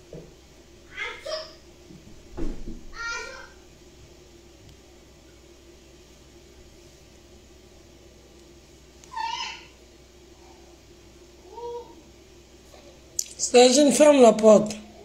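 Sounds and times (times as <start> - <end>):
faint steady hum: 0.0 - 15.0.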